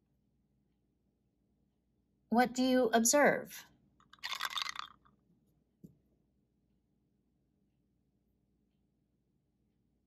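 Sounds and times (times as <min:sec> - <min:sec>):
plastic vial rustling: 0:04.0 - 0:05.1.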